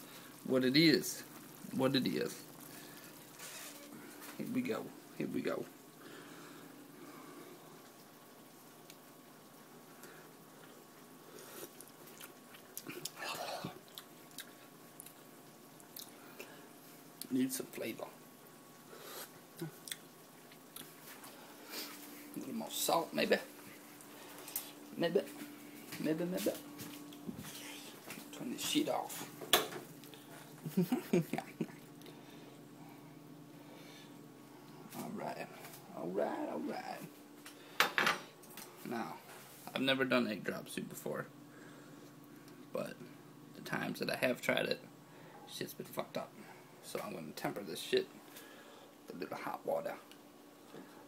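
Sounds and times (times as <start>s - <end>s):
faint hiss: 0.0s - 51.0s
faint steady hum: 0.0s - 51.0s
person sipping soup: 11.3s - 15.2s.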